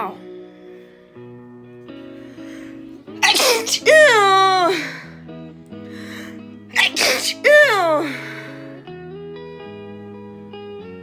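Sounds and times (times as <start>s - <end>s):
soft background music: 0.0s - 11.0s
woman sneezing: 3.2s - 5.1s, 6.7s - 8.3s.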